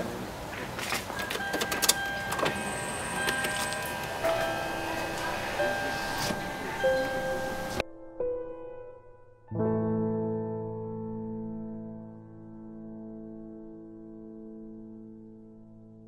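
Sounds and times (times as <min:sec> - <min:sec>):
outdoor background noise: 0:00.0 - 0:07.8
car door and cabin clicks: 0:01.0 - 0:07.8.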